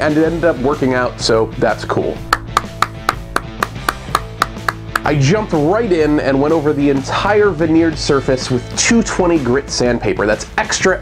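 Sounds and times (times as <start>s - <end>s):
person clapping: 2.3s - 5.2s.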